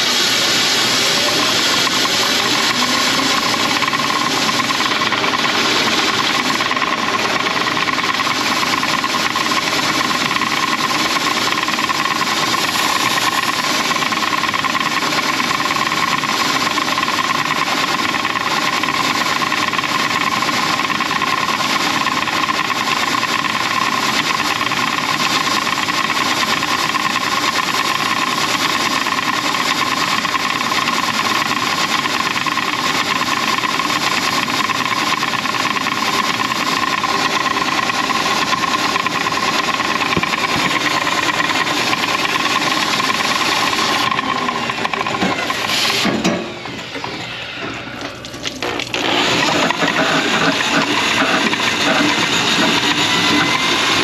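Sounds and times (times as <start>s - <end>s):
drain-cleaning machine motor: 0.0s - 54.0s.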